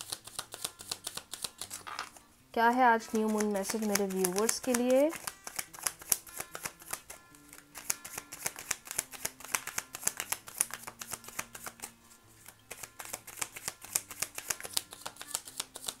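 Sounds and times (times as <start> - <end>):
cards being shuffled: 0.0 - 2.3, 3.0 - 16.0.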